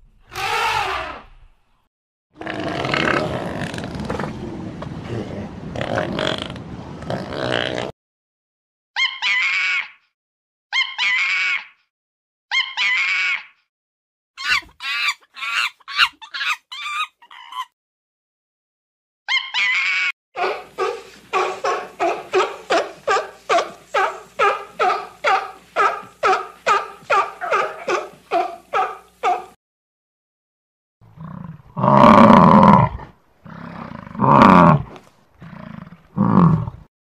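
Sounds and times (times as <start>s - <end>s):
monkeys calling: 14.4s - 17.7s, 19.3s - 29.5s.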